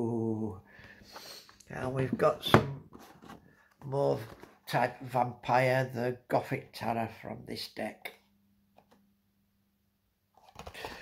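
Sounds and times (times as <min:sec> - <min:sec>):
soft handling noises: 0:01.0 - 0:04.8.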